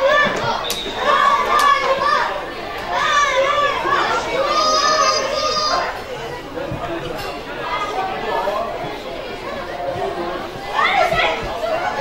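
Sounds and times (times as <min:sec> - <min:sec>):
children shouting: 0:00.0 - 0:06.4, 0:09.3 - 0:12.0.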